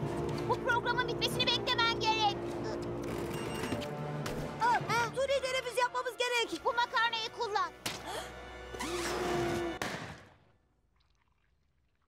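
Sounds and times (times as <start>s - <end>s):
quiet background music: 0.0s - 9.9s.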